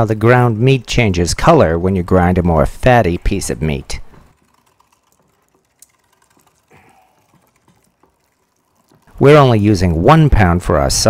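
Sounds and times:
meat grinder clicking: 0:03.8 - 0:10.0.

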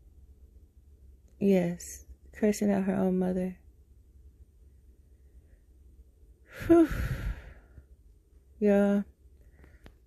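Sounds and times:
person sighing heavily: 0:06.5 - 0:07.7.

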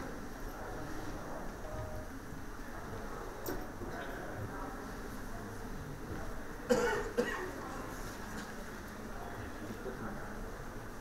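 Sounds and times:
person coughing: 0:06.7 - 0:07.5.

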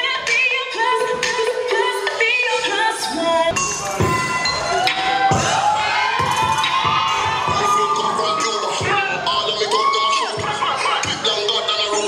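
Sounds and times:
children shouting and cheering: 0:04.0 - 0:12.0.

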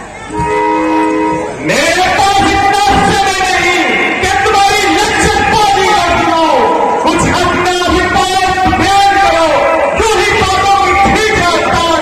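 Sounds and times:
man calling out loudly: 0:01.6 - 0:12.0.

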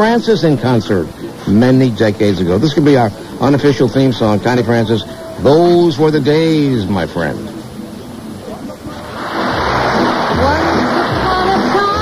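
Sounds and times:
audience applause: 0:09.0 - 0:12.0.

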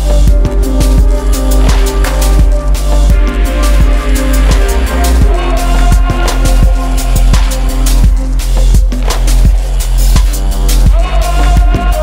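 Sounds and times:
electronic instrumental music: 0:00.0 - 0:12.0
deep sustained bass: 0:00.1 - 0:11.0.

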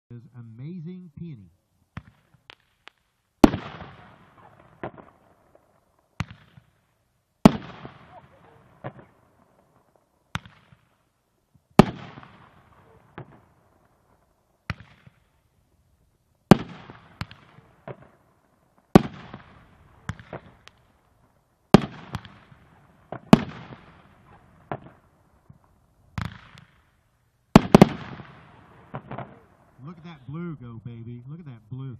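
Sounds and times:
faint firework pops: 0:01.9 - 0:11.0, 0:11.7 - 0:14.0, 0:14.6 - 0:15.4, 0:16.5 - 0:18.2, 0:18.8 - 0:21.1, 0:21.7 - 0:29.6
firework booms with rolling echo: 0:01.9 - 0:15.8, 0:16.4 - 0:30.0.

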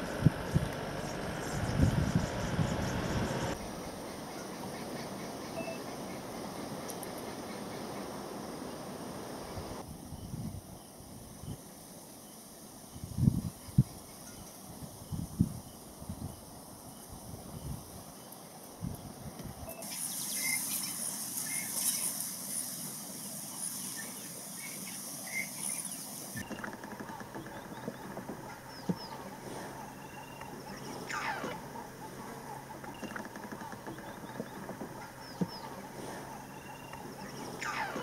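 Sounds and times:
birds calling: 0:00.0 - 0:08.2, 0:23.5 - 0:38.0
high steady hiss: 0:00.0 - 0:27.0
loud sweeping bird calls: 0:23.5 - 0:38.0.

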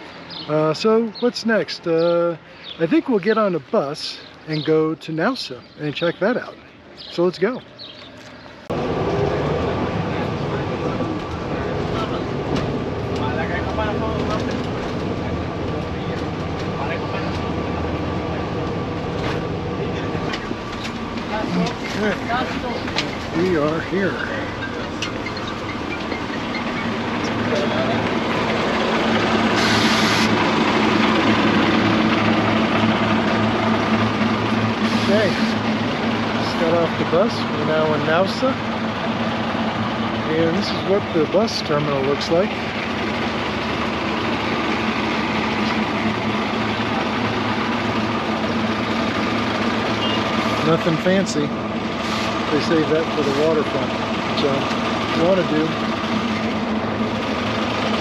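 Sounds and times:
diesel bus engine idling: 0:00.0 - 0:58.0
air hiss: 0:29.5 - 0:30.4.

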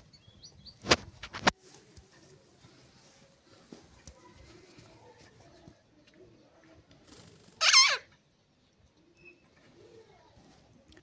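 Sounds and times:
parakeet shrill call: 0:07.6 - 0:08.1.

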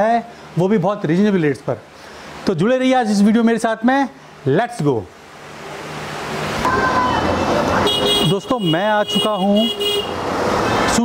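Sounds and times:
road traffic roar: 0:05.1 - 0:11.0
car horn: 0:07.8 - 0:10.3.

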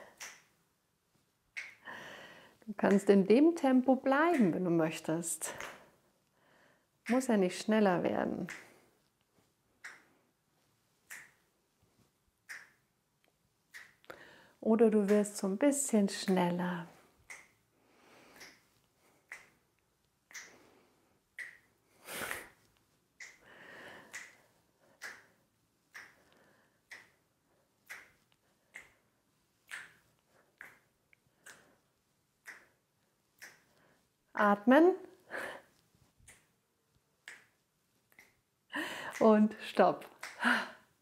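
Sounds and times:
finger snaps: 0:00.1 - 0:00.5, 0:08.4 - 0:08.8, 0:11.1 - 0:11.4, 0:18.3 - 0:18.6, 0:19.3 - 0:19.6, 0:20.3 - 0:20.6, 0:24.1 - 0:24.4, 0:25.0 - 0:25.3, 0:27.9 - 0:29.0, 0:31.4 - 0:31.7, 0:37.2 - 0:37.5, 0:40.0 - 0:40.5.

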